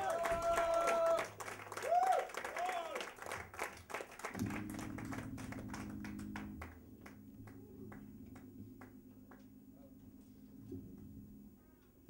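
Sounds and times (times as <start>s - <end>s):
audience applause: 0.0s - 8.1s
low amplifier drone: 4.4s - 12.0s.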